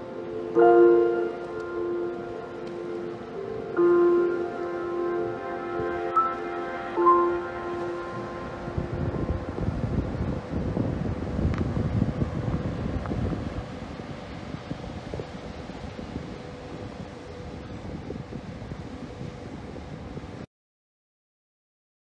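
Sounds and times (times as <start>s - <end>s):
faint steady hum: 0.0s - 20.4s
wind buffeting microphone: 7.0s - 20.4s.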